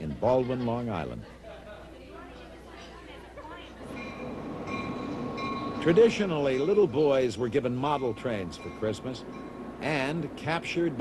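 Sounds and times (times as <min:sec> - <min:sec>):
diesel locomotive rumbling past: 0:03.8 - 0:11.0.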